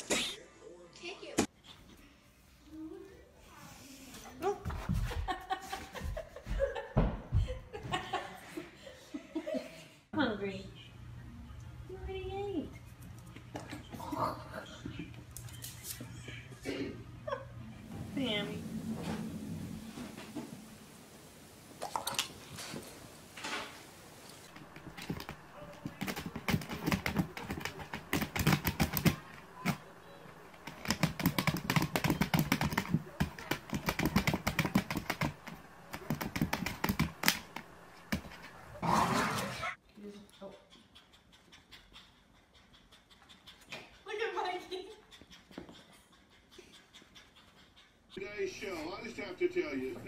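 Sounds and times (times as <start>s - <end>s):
dog scrabbling at plastic bin: 24.5s - 29.8s, 30.6s - 38.6s
paw and claw clicks on tile: 24.5s - 29.8s, 30.5s - 38.5s.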